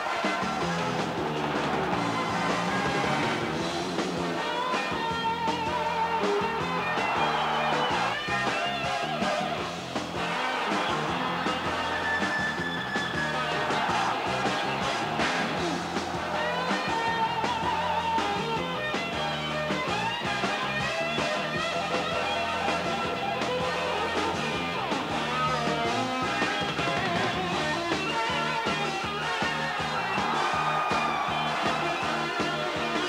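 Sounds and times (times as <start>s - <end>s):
rock music with guitar: 0.0s - 33.0s.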